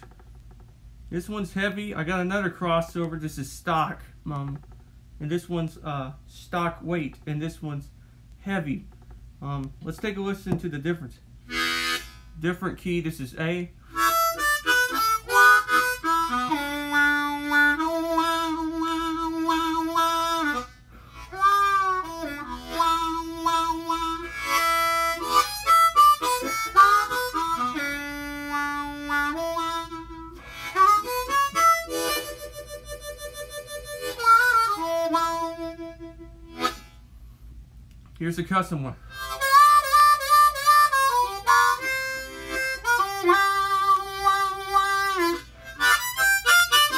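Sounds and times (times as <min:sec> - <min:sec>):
harmonica playing: 0:11.4 - 0:12.7, 0:13.8 - 0:37.2, 0:39.0 - 0:46.9.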